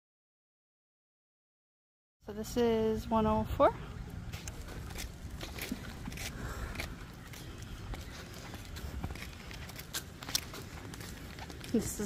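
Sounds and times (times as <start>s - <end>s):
stroller wheels rolling on pavement: 2.4s - 12.0s
footsteps on asphalt: 3.8s - 12.0s.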